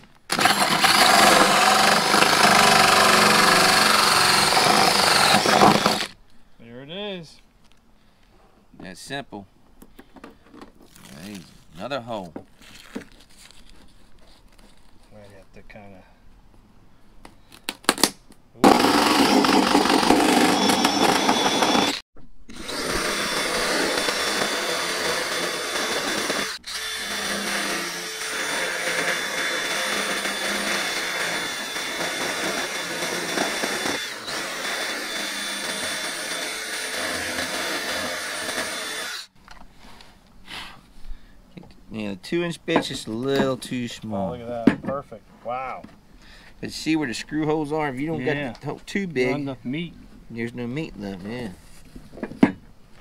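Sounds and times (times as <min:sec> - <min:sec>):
cordless drill cutting fiberglass: 0:00.3 - 0:06.2, 0:18.6 - 0:39.3.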